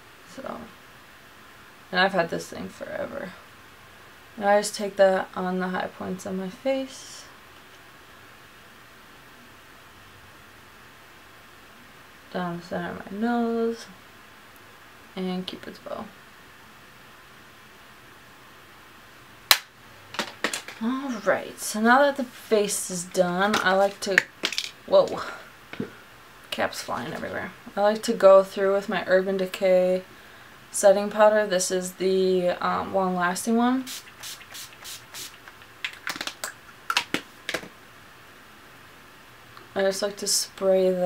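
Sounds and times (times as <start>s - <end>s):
spray bottle hissing: 33.8s - 35.6s.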